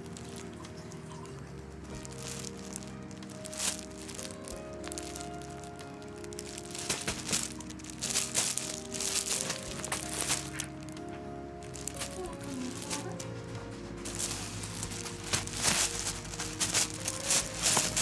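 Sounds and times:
background music: 0.0s - 18.0s
fabric tunnel rustling: 0.0s - 18.0s.

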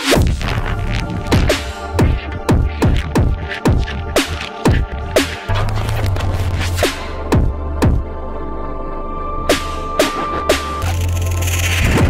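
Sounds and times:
electronic dance music: 0.0s - 8.0s, 9.5s - 12.0s.

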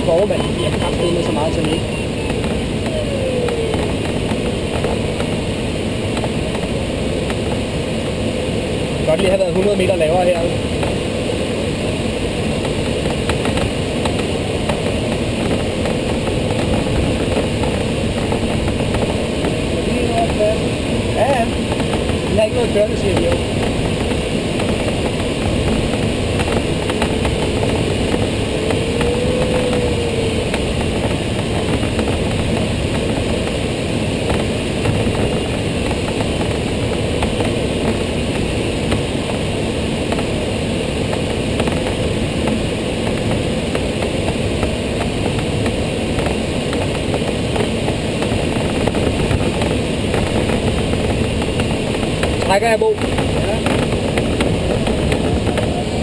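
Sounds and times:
airflow rushing over glider: 0.0s - 56.0s.

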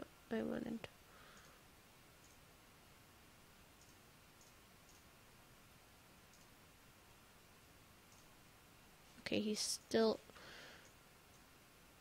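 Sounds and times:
faint computer mouse clicks: 2.2s - 2.4s, 3.8s - 5.0s, 6.3s - 6.5s, 8.1s - 8.3s.

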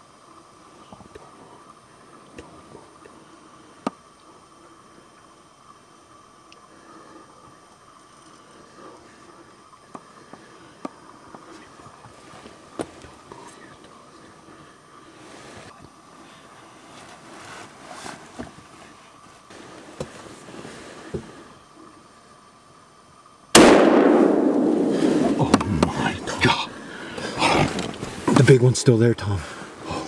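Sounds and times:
faint clicks: 6.5s - 6.7s
rustling handling noises: 16.7s - 21.1s
rifle shot: 23.6s - 25.7s
excited voices: 25.0s - 30.0s.

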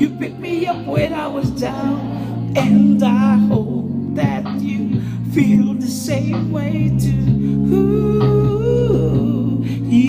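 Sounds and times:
slow karaoke backing track: 0.0s - 10.0s.

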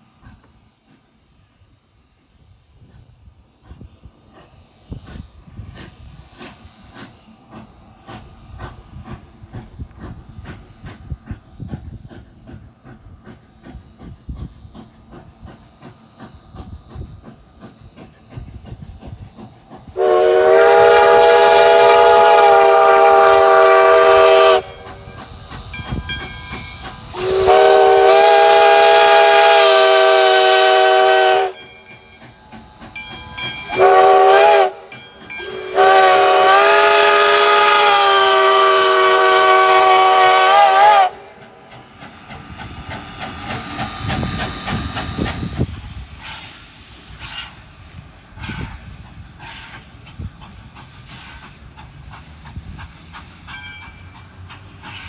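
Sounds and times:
steam hiss: 0.0s - 55.0s
locomotive running noise: 2.8s - 55.0s
steam locomotive whistle blasts: 19.9s - 32.0s, 33.1s - 41.6s.

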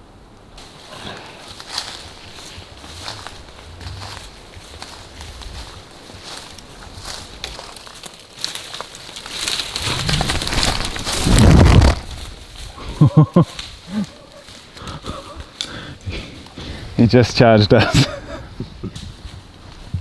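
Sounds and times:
footsteps crunching on dry leaves: 0.6s - 14.8s
people running and rustling: 0.6s - 20.0s
twigs snapping: 3.0s - 12.7s
camera jostling: 9.5s - 12.4s.

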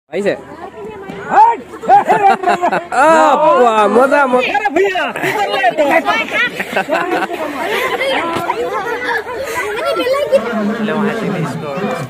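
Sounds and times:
voices chattering: 0.1s - 12.0s.

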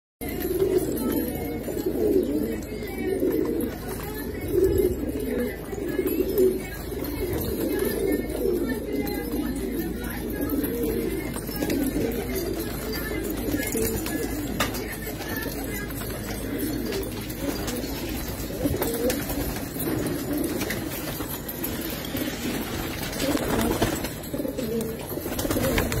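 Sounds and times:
pigeons cooing: 0.2s - 26.0s.

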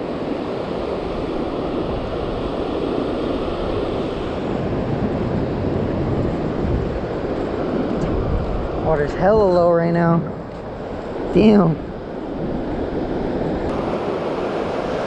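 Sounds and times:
ocean surf over sand: 0.0s - 15.0s
wind on microphone: 0.0s - 15.0s.

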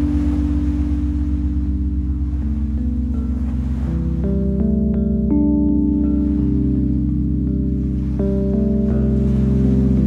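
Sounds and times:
lo-fi chill music: 0.0s - 10.0s.

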